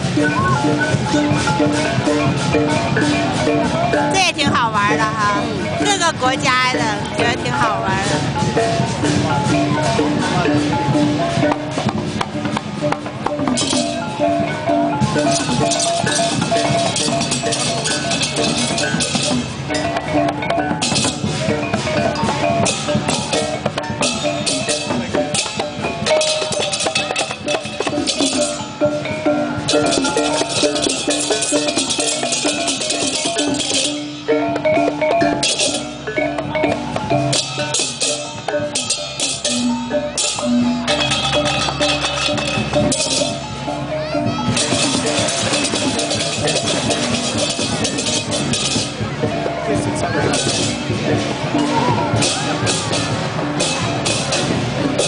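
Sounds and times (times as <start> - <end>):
hand-drum hits: 0.0 - 55.0
held melody notes: 0.0 - 55.0
high percussion hiss: 0.0 - 55.0.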